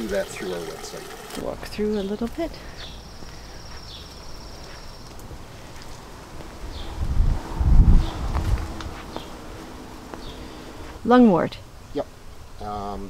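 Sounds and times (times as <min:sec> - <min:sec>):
low rumble on microphone: 0:06.1 - 0:10.9.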